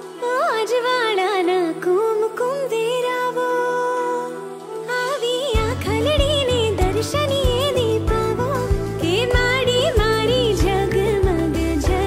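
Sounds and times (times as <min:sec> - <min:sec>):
drum and bass beat: 0:05.6 - 0:12.0.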